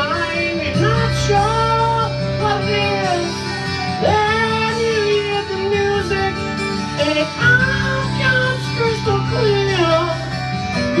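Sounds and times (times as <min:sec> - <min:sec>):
electric guitar: 0:00.0 - 0:11.0
person singing: 0:00.0 - 0:11.0.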